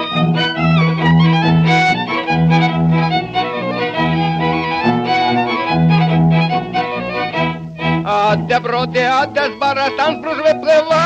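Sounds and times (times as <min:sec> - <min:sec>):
fiddle melody: 0:00.0 - 0:11.0.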